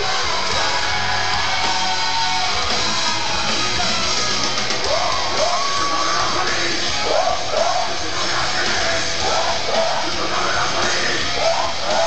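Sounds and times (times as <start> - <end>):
vocalist singing into microphone: 0.0 - 2.7, 4.8 - 12.0
live rock band playing: 0.0 - 12.0.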